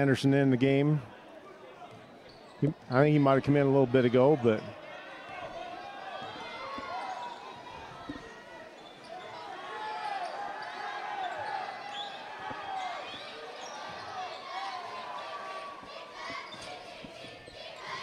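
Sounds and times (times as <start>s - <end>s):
voices echoing in a gym: 0.0s - 18.0s
sneaker squeaks: 2.0s - 2.7s, 10.1s - 14.7s, 15.8s - 18.0s.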